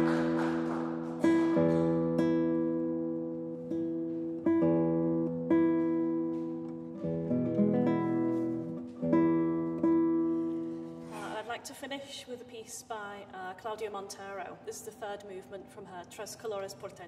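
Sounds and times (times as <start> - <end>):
classical guitar chords: 0.0 - 11.2.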